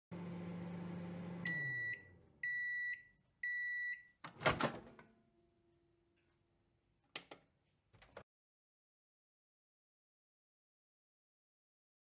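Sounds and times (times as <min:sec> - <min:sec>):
microwave oven humming: 0:00.1 - 0:03.6
microwave beeps: 0:00.6 - 0:04.2.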